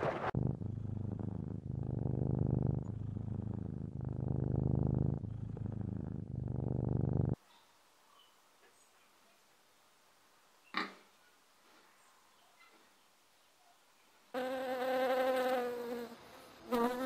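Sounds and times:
cat purring: 0.2s - 7.4s.

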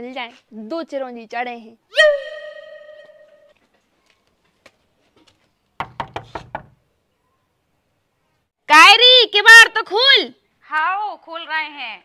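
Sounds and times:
knocking on wooden door: 5.8s - 6.8s.

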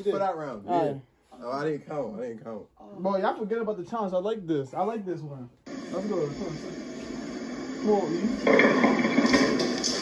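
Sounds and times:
steady hiss: 5.7s - 10.0s.

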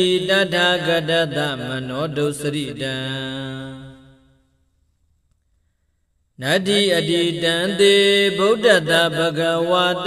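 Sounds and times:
monk chanting: 0.0s - 4.3s, 6.4s - 10.0s.

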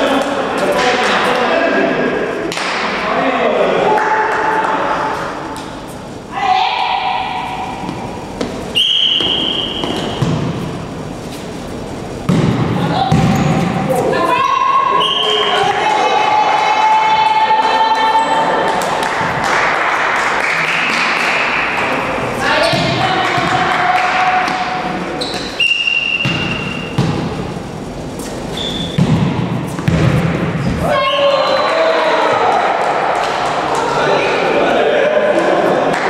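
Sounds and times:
players shouting: 30.8s - 36.0s.

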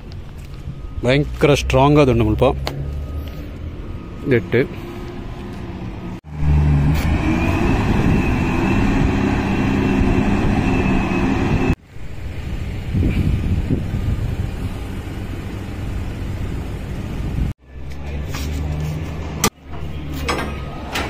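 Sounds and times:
heavy engine running: 2.6s - 17.5s
high steady whine: 6.3s - 13.1s
low steady rumble: 9.8s - 17.5s.

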